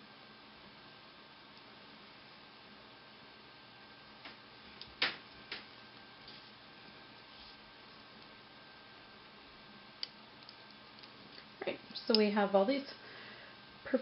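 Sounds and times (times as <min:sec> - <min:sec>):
faint steady hiss: 0:00.0 - 0:14.0.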